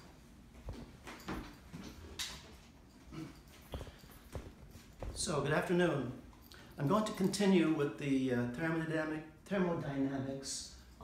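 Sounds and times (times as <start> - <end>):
faint footsteps: 0.0 - 6.5.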